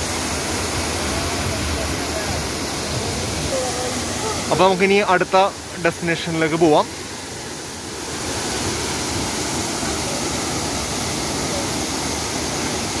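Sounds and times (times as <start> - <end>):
waterfall rushing: 0.0 - 13.0.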